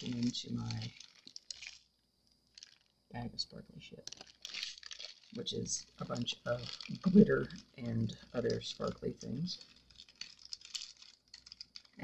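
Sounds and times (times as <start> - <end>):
plastic bag rustling: 0.0 - 1.9, 2.5 - 2.9, 4.0 - 12.0
plastic bag clicks: 2.5 - 2.9, 9.7 - 12.0.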